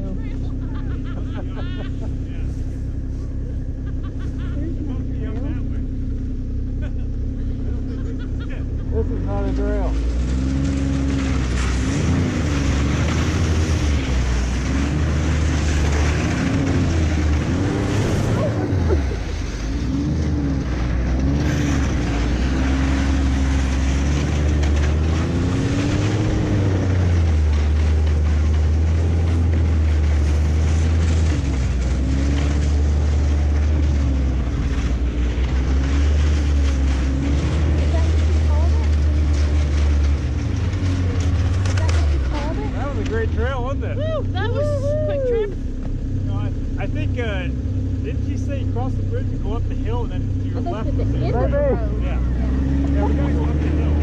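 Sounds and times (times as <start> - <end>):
snowmobile engine revving: 0.0 - 54.0.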